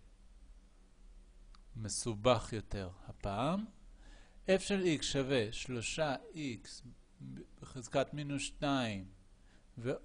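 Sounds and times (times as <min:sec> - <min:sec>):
man speaking voice-over: 0:01.8 - 0:03.7, 0:04.5 - 0:09.1.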